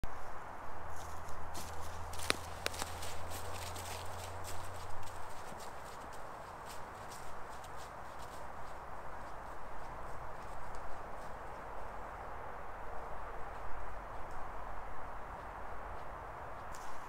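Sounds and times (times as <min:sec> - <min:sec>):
footsteps crunching dry leaves: 0:00.9 - 0:11.4.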